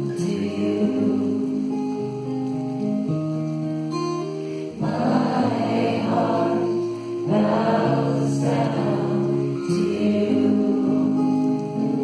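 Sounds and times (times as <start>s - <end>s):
acoustic guitar playing chords: 0.0s - 12.0s.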